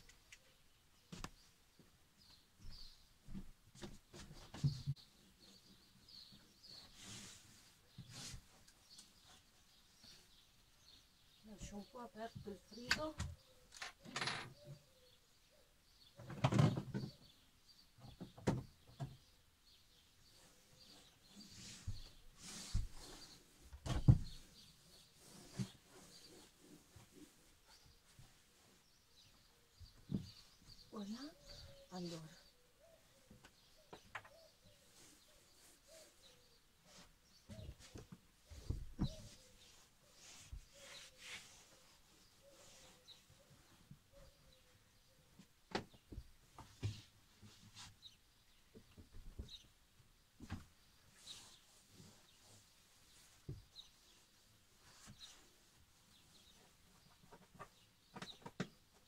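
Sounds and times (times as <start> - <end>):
rubbing while cleaning: 20.3 - 23.6, 24.6 - 28.8, 38.5 - 43.7.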